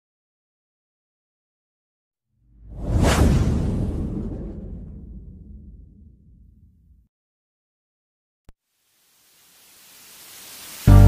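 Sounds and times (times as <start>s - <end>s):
cinematic whoosh: 2.5s - 6.8s
deep rumble: 2.5s - 7.0s.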